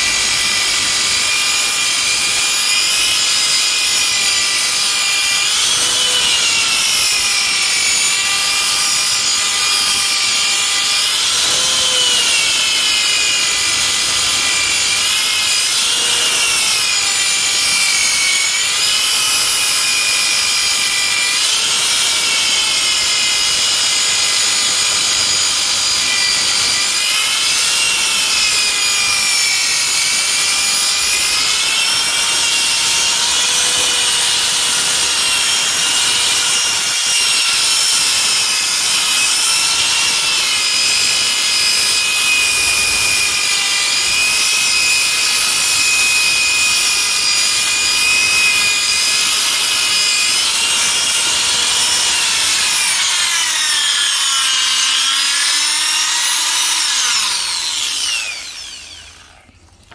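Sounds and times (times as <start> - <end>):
electric polisher motor whine: 0.0 - 59.9.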